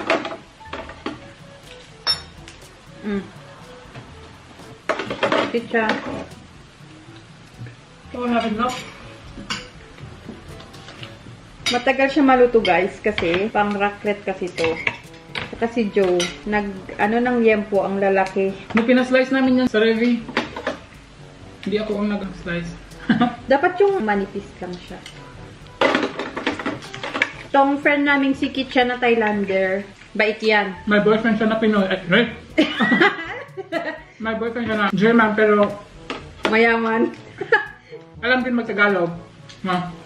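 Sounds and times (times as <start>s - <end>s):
metal tongs scraping hot plate: 14.5s - 15.5s.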